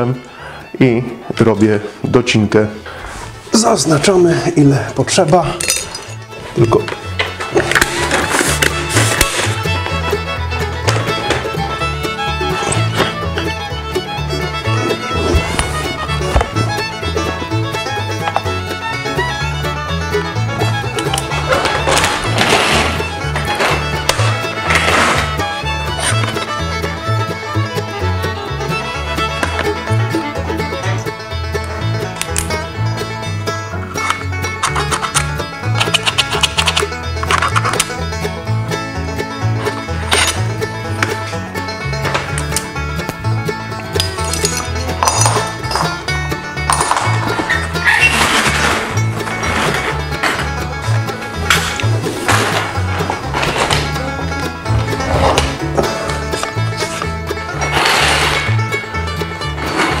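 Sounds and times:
music with rhythmic bass line: 5.6s - 60.0s.

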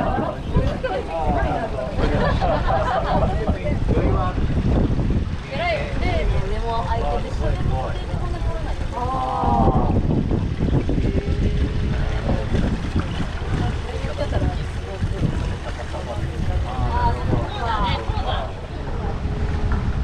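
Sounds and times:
people talking: 0.0s - 4.4s, 5.5s - 10.1s, 10.9s - 19.3s
water running along boat hull: 0.0s - 20.0s
wind on microphone: 0.0s - 20.0s.

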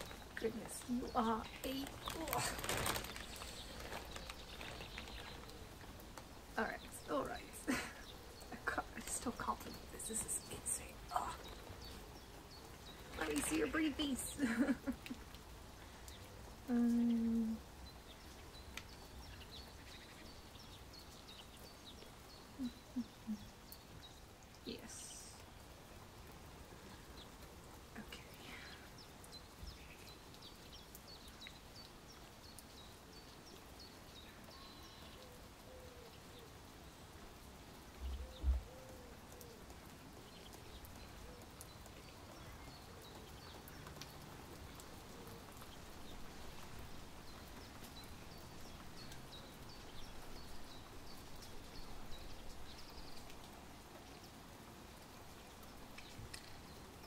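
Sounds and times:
faint bird chirps: 34.2s - 36.5s.

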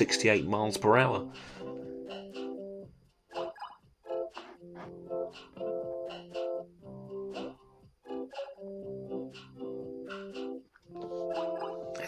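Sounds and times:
plucked guitar music: 4.1s - 10.6s.

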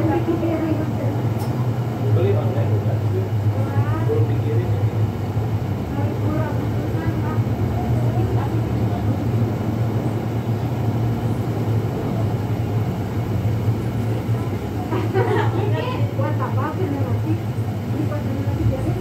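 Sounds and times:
faint voices talking: 0.0s - 19.0s
steady low hum: 0.0s - 19.0s.

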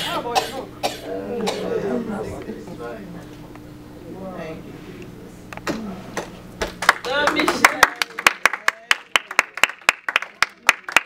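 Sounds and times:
person coughing: 0.0s - 2.1s
murmured speech: 0.0s - 6.4s.

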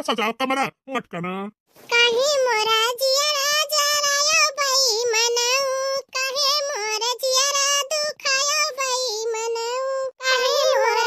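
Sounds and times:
high cartoon voice singing: 1.9s - 11.0s.

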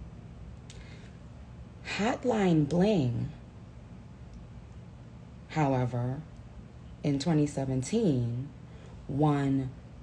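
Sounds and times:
low room hum: 0.0s - 10.0s
woman breathing: 0.7s - 1.3s, 8.6s - 9.1s
woman speaking: 1.8s - 3.4s, 5.5s - 6.3s, 7.0s - 9.8s.

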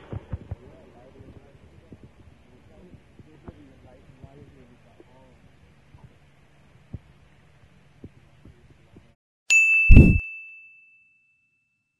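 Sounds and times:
bright bell-like ding: 9.5s - 11.9s
deep low thump: 9.9s - 10.2s.

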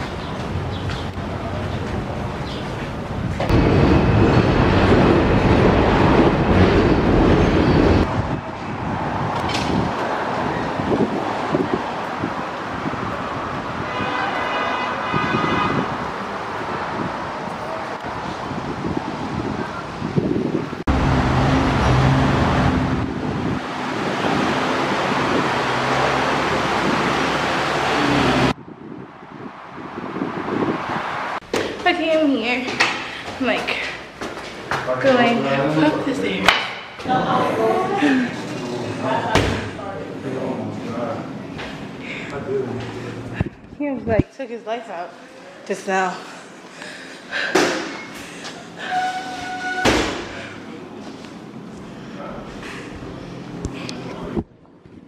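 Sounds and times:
city street traffic: 0.0s - 55.0s
vehicle horn: 13.8s - 16.0s.

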